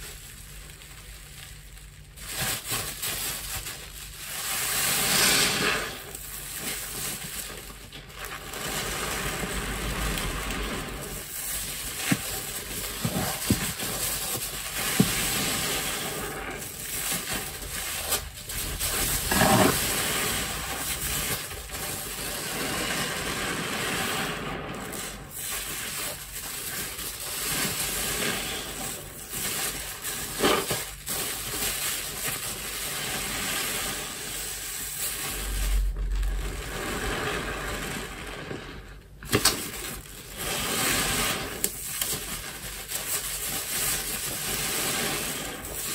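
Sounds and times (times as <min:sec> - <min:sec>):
sponge squelching in soap foam: 0:00.0 - 0:38.9.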